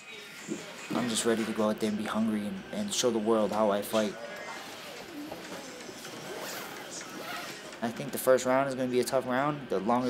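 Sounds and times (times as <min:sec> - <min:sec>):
zipper being pulled closed: 0:04.6 - 0:07.7.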